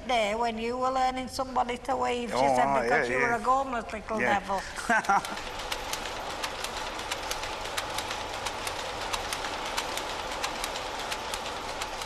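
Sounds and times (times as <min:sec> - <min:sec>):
line shafting and belts din: 0:04.3 - 0:12.0
power looms clacking: 0:04.3 - 0:12.0.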